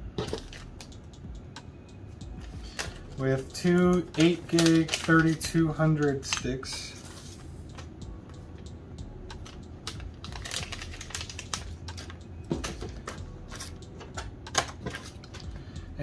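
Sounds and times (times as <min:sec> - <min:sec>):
clicks of handling ram sticks: 0:03.6 - 0:06.9.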